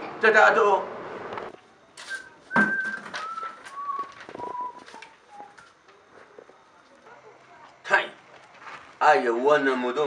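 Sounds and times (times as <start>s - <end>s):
person whistling a falling tune: 2.1s - 5.7s.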